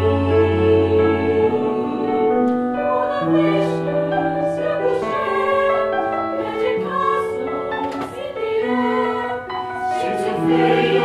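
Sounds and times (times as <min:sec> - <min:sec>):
choir singing in parts: 0:00.0 - 0:11.0.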